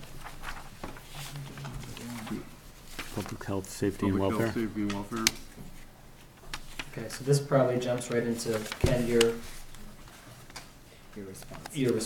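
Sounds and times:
soft murmured voice: 0:01.2 - 0:05.4.

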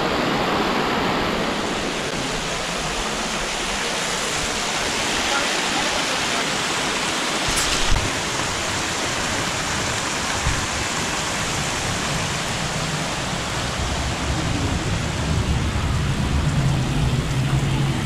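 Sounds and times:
rushing falling water: 0:00.0 - 0:18.0.

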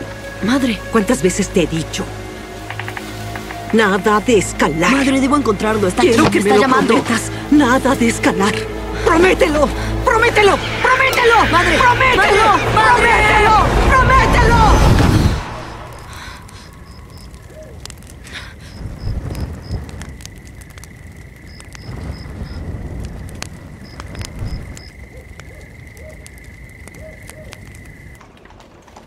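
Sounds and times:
campfire crackling and popping: 0:00.0 - 0:13.6, 0:15.7 - 0:29.0
low rumble: 0:00.0 - 0:25.2
night insects chirping: 0:00.0 - 0:28.3.

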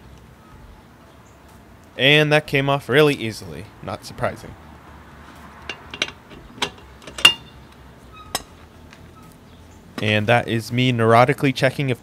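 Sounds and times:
metallic clinks: 0:05.7 - 0:07.6.

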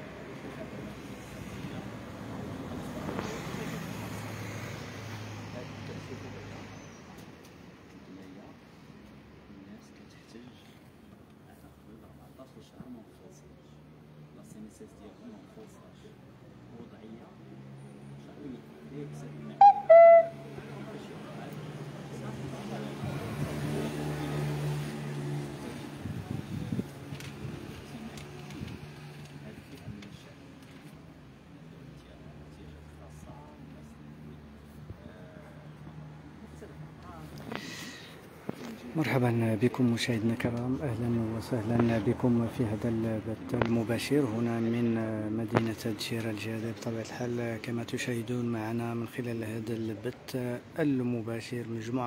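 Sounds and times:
street noise: 0:00.0 - 0:52.0
high-pitched toots: 0:19.6 - 0:20.5.

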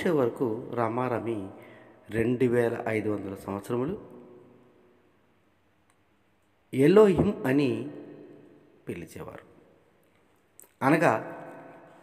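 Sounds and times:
man speaking: 0:06.8 - 0:08.0, 0:08.8 - 0:09.5, 0:10.7 - 0:11.4.

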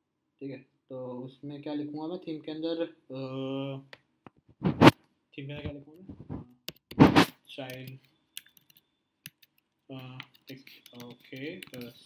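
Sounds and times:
computer keyboard typing: 0:06.7 - 0:07.0, 0:07.6 - 0:12.0.

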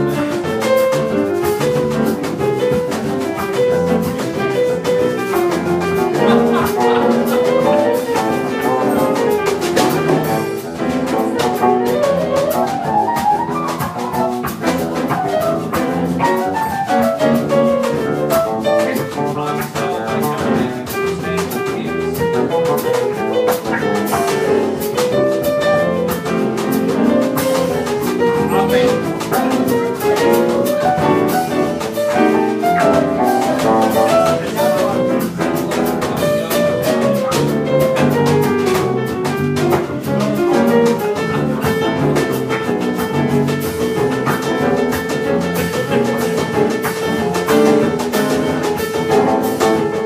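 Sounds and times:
drum strokes: 0:00.0 - 0:50.0
live jazz band playing: 0:00.0 - 0:50.0.

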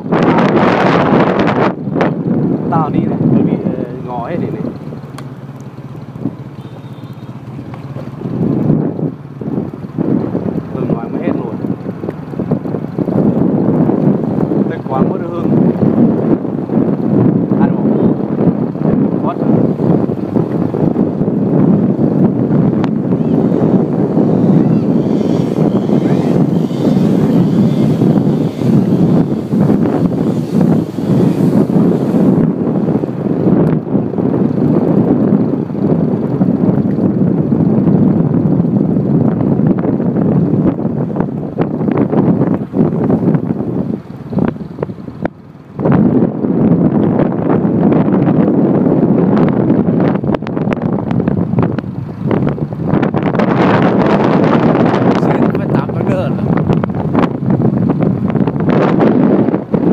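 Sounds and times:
motorbike running: 0:00.0 - 0:59.9
wind rushing over microphone: 0:00.0 - 0:59.9.

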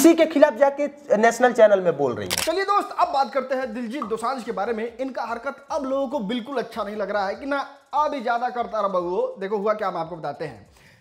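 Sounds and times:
men talking: 0:00.0 - 0:10.8
shutter-like click: 0:02.3 - 0:02.6.

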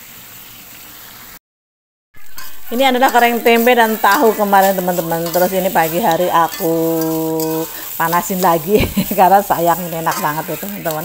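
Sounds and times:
food sizzling in a wok: 0:00.0 - 0:01.4, 0:02.2 - 0:11.0.

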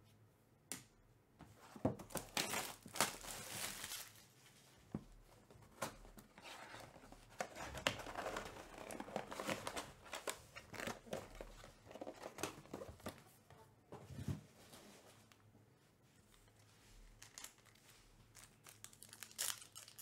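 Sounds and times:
packaging crinkling and tearing: 0:02.1 - 0:04.2, 0:06.8 - 0:12.8, 0:17.2 - 0:20.0.

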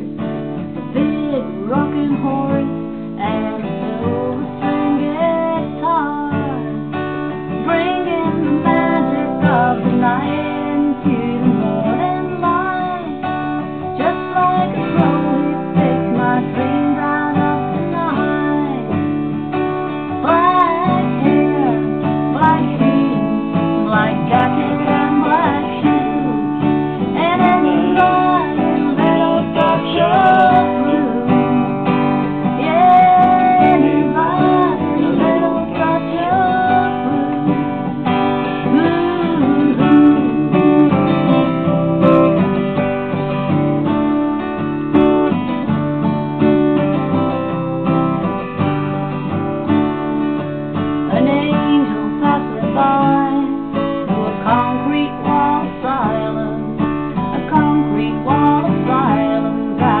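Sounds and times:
woman singing: 0:00.0 - 0:42.8, 0:50.8 - 1:00.0
acoustic guitar strumming: 0:00.0 - 1:00.0.

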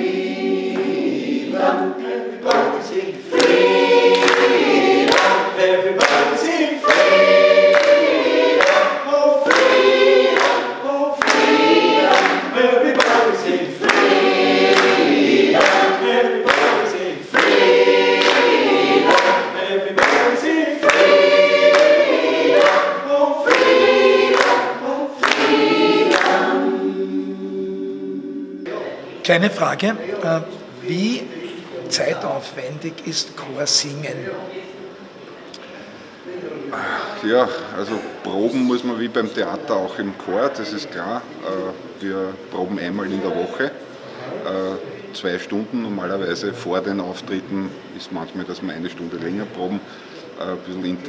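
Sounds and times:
mixed choir singing: 0:00.0 - 0:29.2.

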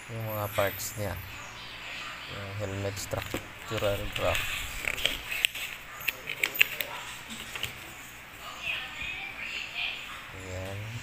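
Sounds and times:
sharp paper ticks: 0:03.1 - 0:07.8
paper pages bent and flipped: 0:03.2 - 0:07.8.

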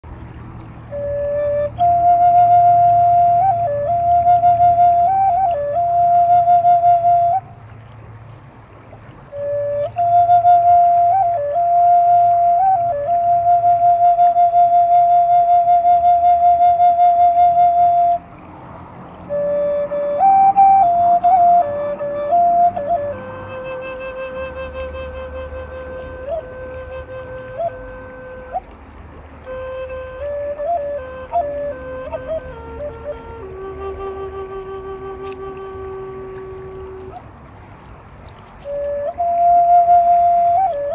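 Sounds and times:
flute slow melody with vibrato: 0:00.8 - 0:07.7, 0:09.2 - 0:18.4, 0:19.1 - 0:37.6, 0:38.4 - 0:40.9.

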